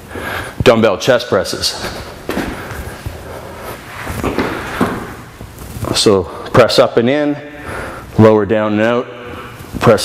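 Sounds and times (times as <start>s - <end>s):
footsteps: 1.6s - 5.9s.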